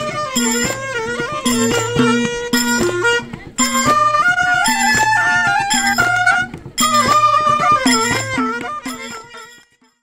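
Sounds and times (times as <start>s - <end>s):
clarinets playing folk tune: 0.0s - 10.0s.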